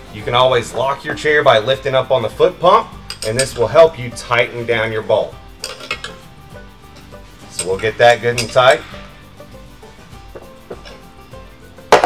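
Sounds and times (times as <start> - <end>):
soft background music: 0.0 - 12.0
wrench clanking on floor: 7.5 - 8.9.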